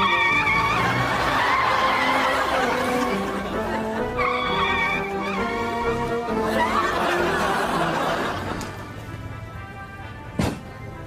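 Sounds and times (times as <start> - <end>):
tyres squealing: 0.0 - 7.3.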